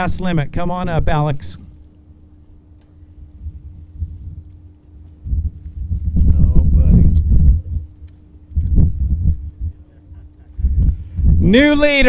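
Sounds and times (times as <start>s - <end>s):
faint steady hum: 0.0s - 12.0s
wind buffeting microphone: 2.6s - 12.0s.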